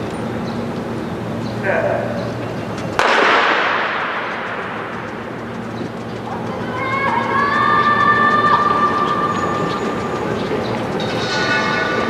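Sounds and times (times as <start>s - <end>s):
starting gun shot with echo: 3.0s - 4.8s.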